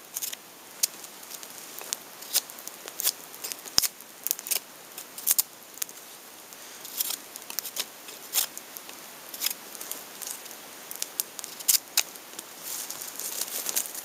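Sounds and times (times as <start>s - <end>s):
knife cutting and splitting wood: 6.9s - 8.5s.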